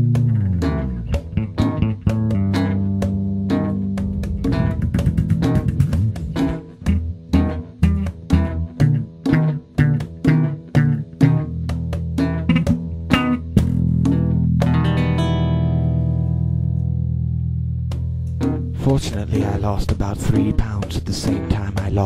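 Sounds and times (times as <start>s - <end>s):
guitar and bass riff: 0.0s - 22.0s.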